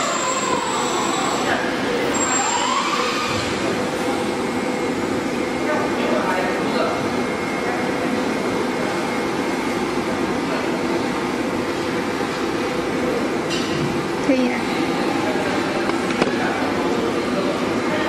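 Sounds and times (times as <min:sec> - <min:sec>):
heat-shrink machine drone: 0:00.0 - 0:18.0.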